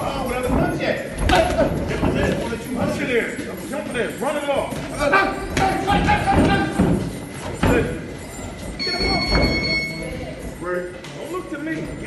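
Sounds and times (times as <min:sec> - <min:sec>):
loud voices: 0:00.0 - 0:10.4
footwork on ring canvas: 0:00.0 - 0:12.0.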